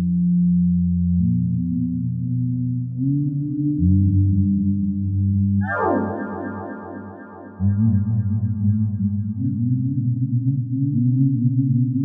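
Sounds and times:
low synthesizer drone: 5.6 - 9.5.

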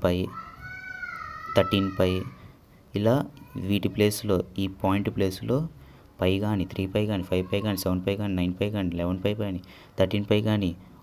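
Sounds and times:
long high-pitched cry: 0.3 - 2.5
man speaking: 1.6 - 10.8.

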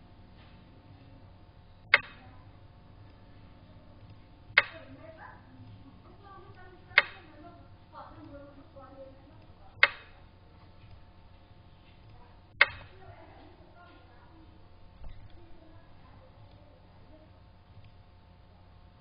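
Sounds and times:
sharp wooden clicks: 1.8 - 2.4, 4.0 - 5.0, 6.4 - 8.4, 9.3 - 13.0.

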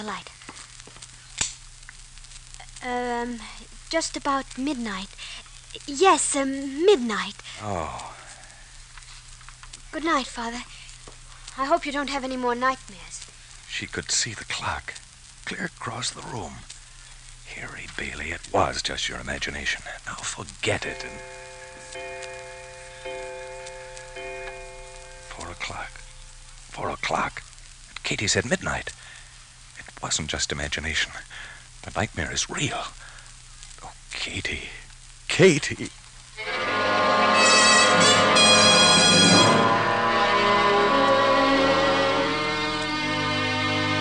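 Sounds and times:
old radio recording hiss and crackle: 0.0 - 44.0
person speaking: 17.5 - 21.9, 24.6 - 26.1
clock bell striking: 20.9 - 25.6, 37.4 - 39.7.

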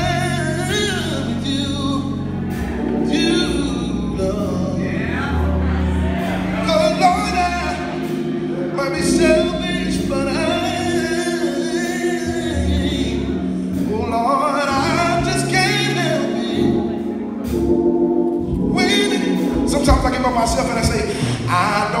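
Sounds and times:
man singing gospel: 0.0 - 17.1, 18.5 - 22.0
band playing held chords: 0.0 - 22.0.

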